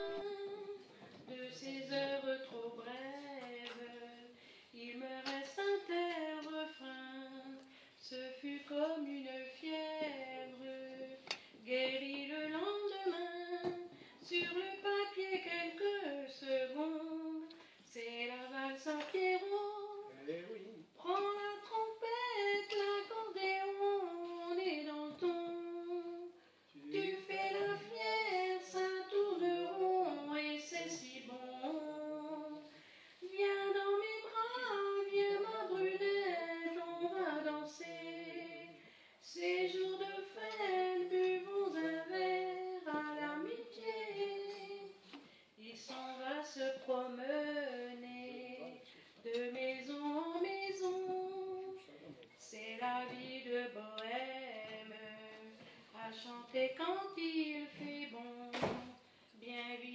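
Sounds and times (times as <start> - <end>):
woman singing unaccompanied: 0.0 - 20.1, 21.0 - 45.0, 45.6 - 51.8, 52.4 - 59.9.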